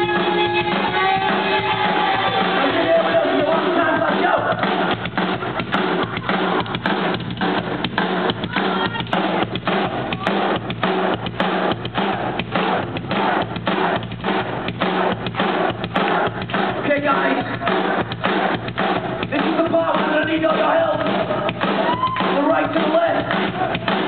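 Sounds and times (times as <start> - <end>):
live rock band playing: 0.0 - 11.8
kick and snare drum hammering: 0.0 - 24.0.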